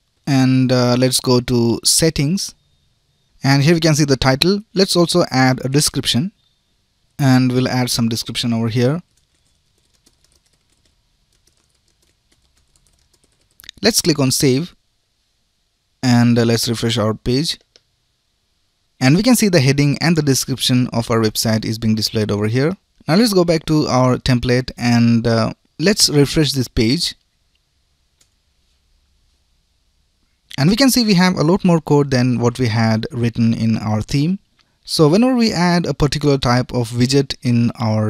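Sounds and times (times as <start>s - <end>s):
room hum: 0.0s - 38.0s
typing on computer keyboard: 9.1s - 13.8s.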